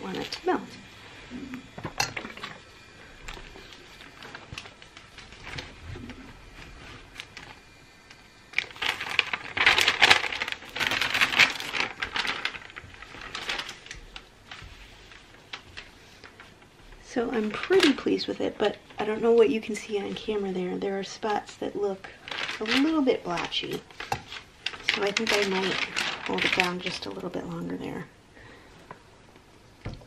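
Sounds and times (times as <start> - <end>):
paper rustling and crackling: 1.8 - 7.8, 8.5 - 27.8.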